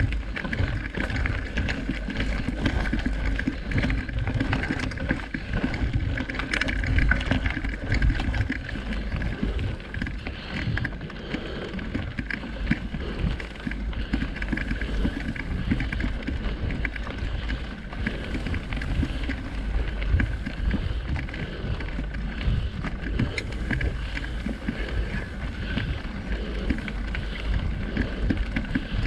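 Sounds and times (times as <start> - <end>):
bike rattles and clicks: 0.0 - 29.0
bike tyre noise on dirt: 0.0 - 29.0.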